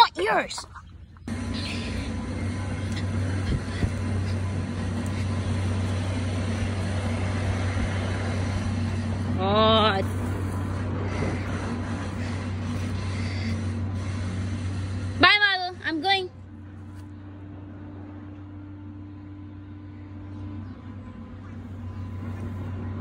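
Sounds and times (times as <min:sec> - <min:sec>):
motor humming: 0:00.0 - 0:23.0.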